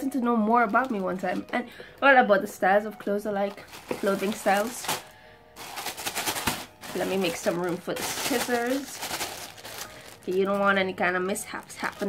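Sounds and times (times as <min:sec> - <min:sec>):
plastic bag crinkling: 0:00.4 - 0:01.6, 0:03.5 - 0:12.0.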